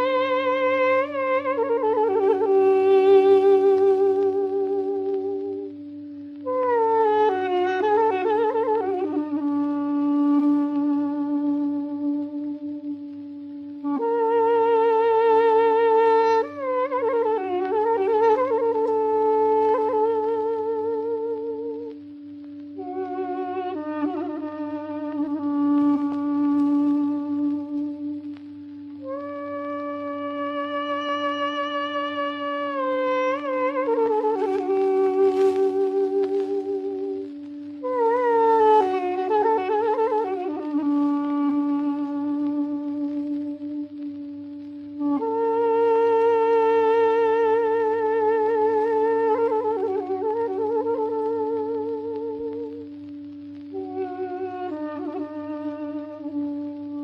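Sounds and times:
held drone note: 0.0 - 57.0
solo woodwind melody: 0.0 - 57.0.

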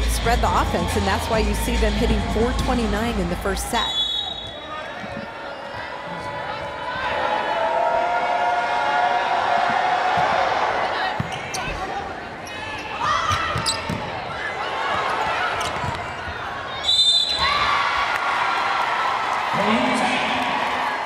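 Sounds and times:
sneakers squeaking: 11.0 - 17.8.

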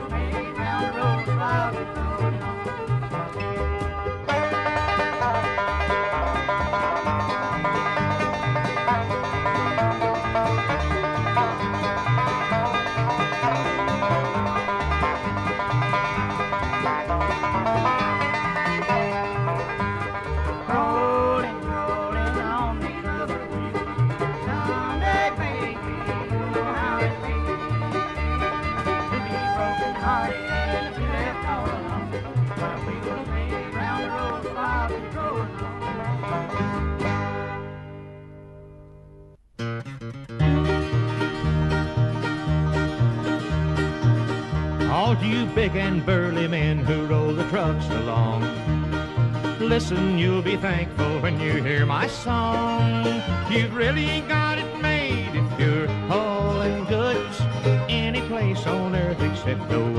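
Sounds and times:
instrumental bluegrass music: 0.0 - 59.9
picked banjo: 0.0 - 59.9
sliding melody notes: 0.0 - 59.9.

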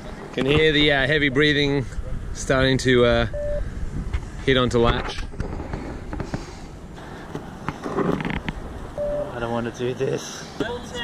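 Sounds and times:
wind rumble: 0.6 - 9.8.

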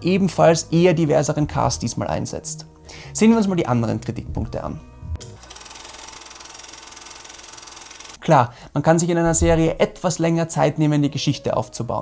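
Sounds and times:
fast mechanical rattle: 5.4 - 8.2.

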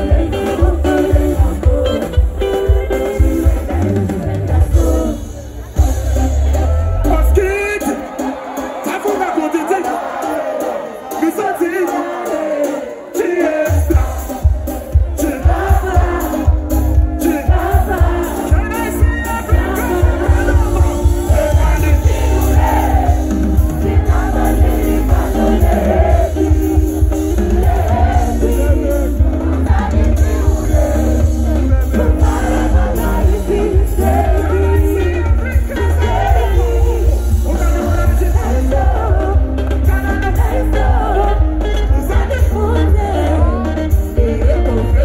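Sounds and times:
guitars: 0.0 - 9.2, 12.6 - 45.0
drums: 0.0 - 45.0
person singing: 11.7 - 45.0
heavy bass line: 13.7 - 45.0.

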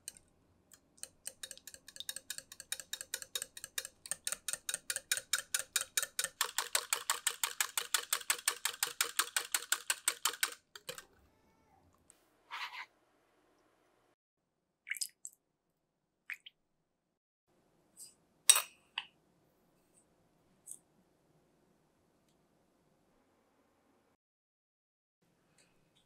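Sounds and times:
wire whisk clicking against glass: 0.0 - 6.6.

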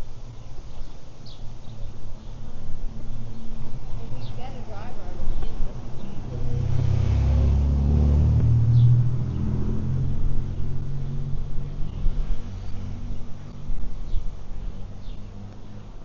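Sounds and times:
vehicle engine passing by: 2.2 - 16.0.

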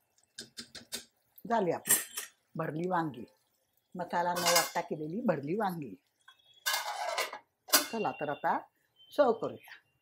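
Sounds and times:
metal lid clanking: 4.3 - 4.8, 6.6 - 8.0
metal lid scraping on pot: 4.3 - 4.8, 6.6 - 8.0.

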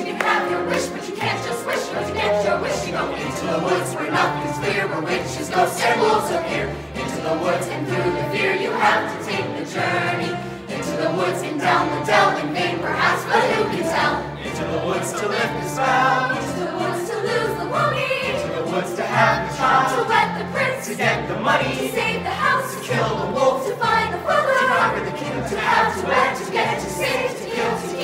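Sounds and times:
youth chorus singing: 0.0 - 28.0.

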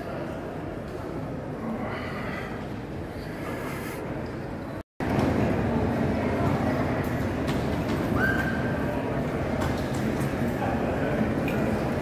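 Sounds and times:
hum of large indoor space: 0.0 - 12.0.

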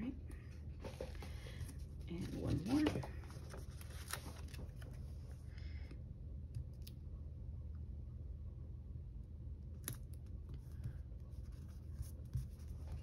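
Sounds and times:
paper rustling: 0.8 - 5.4.

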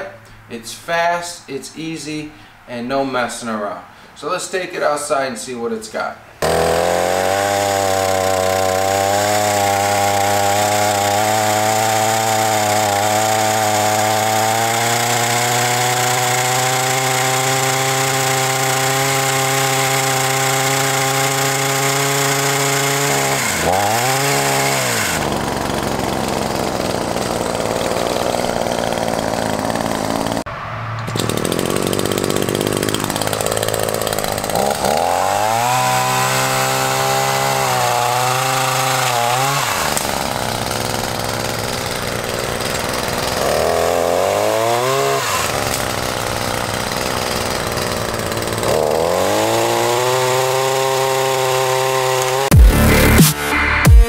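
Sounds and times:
pole saw engine revving: 6.4 - 54.0.

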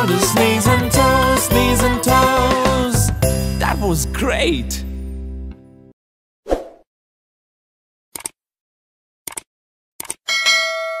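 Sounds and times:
bright bell chime: 10.3 - 11.0.

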